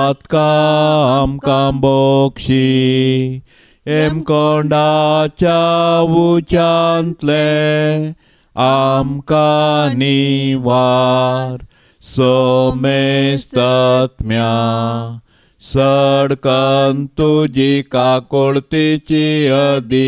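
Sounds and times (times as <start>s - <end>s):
man singing a hymn: 0.0s - 20.0s.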